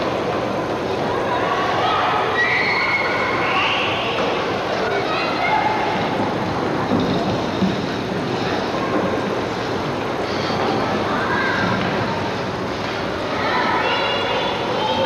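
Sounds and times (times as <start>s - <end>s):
distant indistinct voices: 0.0s - 15.0s.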